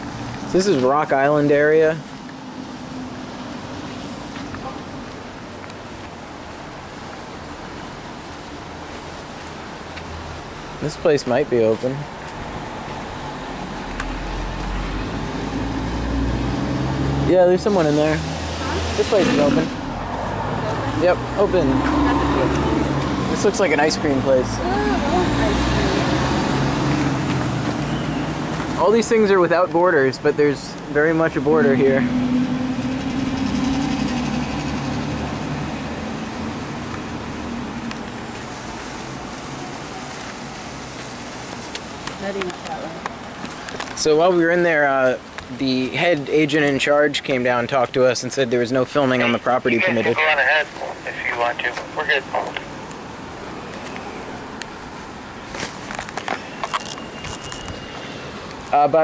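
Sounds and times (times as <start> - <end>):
vehicle traffic rumble: 0.0 - 59.0.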